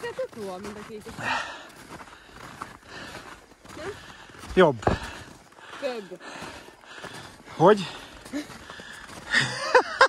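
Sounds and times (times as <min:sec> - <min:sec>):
footsteps on snow: 0:00.0 - 0:10.0.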